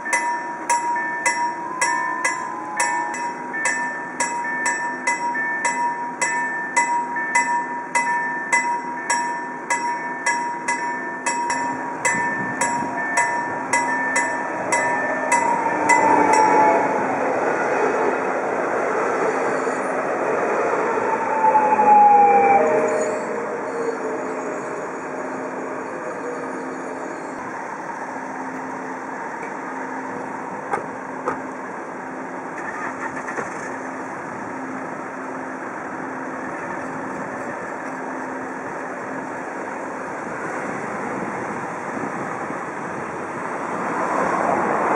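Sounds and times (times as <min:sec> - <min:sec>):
level-crossing bell dinging: 0:00.0 - 0:16.8
cars driving past: 0:43.4 - 0:44.9.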